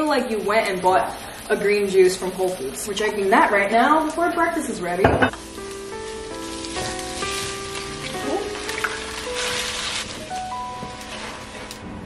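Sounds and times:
vegetables sizzling in a skillet: 0:00.0 - 0:12.0
background music with held notes: 0:05.3 - 0:12.0.

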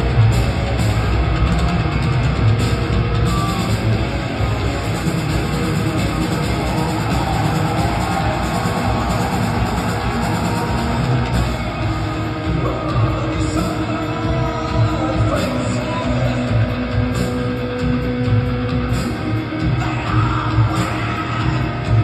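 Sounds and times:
metal band playing live: 0:00.0 - 0:22.0.

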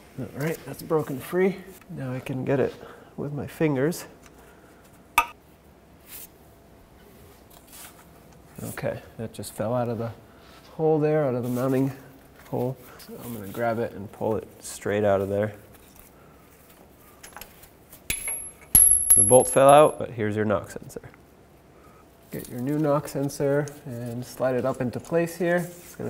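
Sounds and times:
sharp metallic clink: 0:18.1 - 0:20.0.

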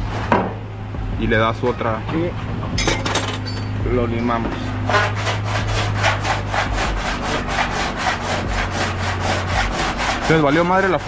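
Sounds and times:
file scraping sheet metal: 0:04.5 - 0:11.0.

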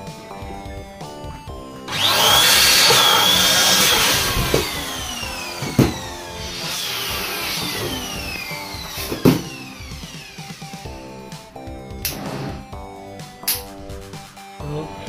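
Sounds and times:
electric balloon pump whirring: 0:01.9 - 0:11.3.

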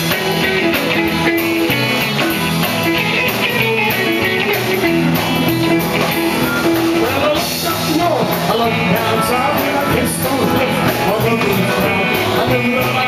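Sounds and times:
drum kit: 0:00.0 - 0:13.0
electric guitar: 0:00.0 - 0:13.0
rockabilly band playing: 0:00.0 - 0:13.0.

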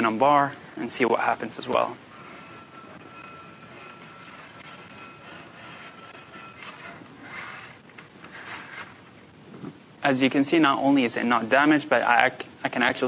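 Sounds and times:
faint steady high tone: 0:01.4 - 0:07.2
tube scraping against metal bar: 0:01.4 - 0:09.0.

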